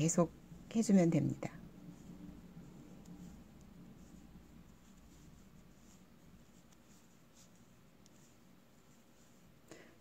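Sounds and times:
knitting needles scratching: 0:00.0 - 0:09.6.

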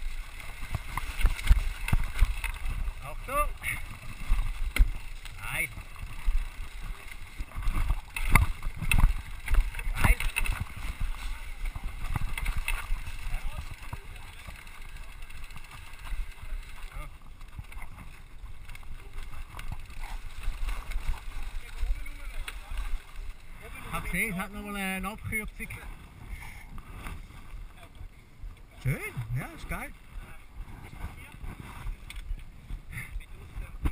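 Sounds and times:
wind on microphone: 0:00.0 - 0:14.2, 0:30.1 - 0:33.9
bike tyres rumbling: 0:00.0 - 0:33.9
knocks from rocks and roots: 0:07.5 - 0:13.2.

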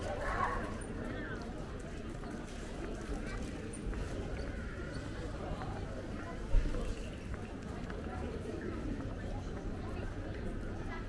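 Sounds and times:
faint voices of passers-by: 0:00.0 - 0:11.0.

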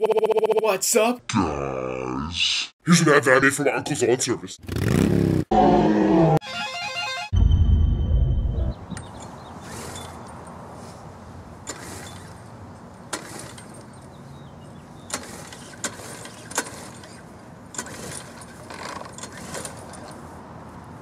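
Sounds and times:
low outdoor background: 0:07.3 - 0:21.0
lawn mower starter cord pulls: 0:09.0 - 0:10.6, 0:11.6 - 0:14.2, 0:15.0 - 0:20.3.

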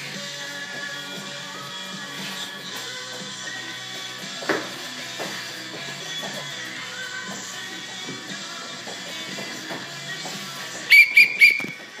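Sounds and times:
background music: 0:00.0 - 0:12.0
whistle blasts: 0:10.9 - 0:11.8.

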